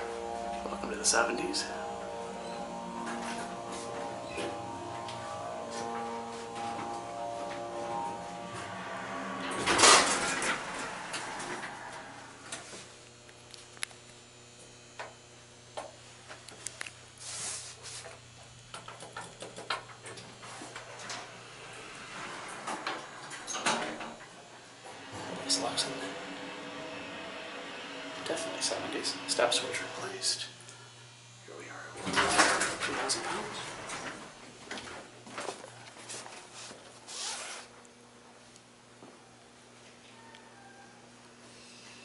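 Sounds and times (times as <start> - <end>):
elevator doors sliding: 0.0 - 12.8, 20.0 - 30.5, 32.0 - 35.1
steady low hum: 0.0 - 37.0.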